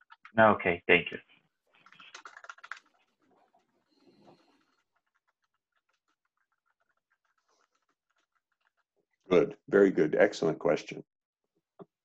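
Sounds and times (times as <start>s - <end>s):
typing on keyboard: 1.8s - 3.2s, 3.8s - 8.9s.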